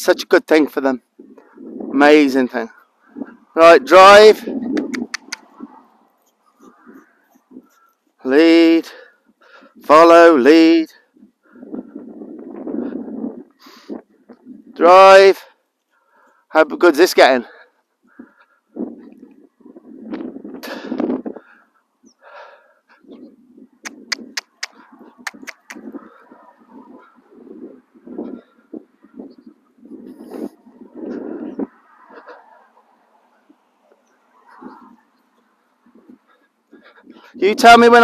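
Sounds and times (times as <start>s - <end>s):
sharp clicks: 4.7s - 5.5s, 23.8s - 25.8s.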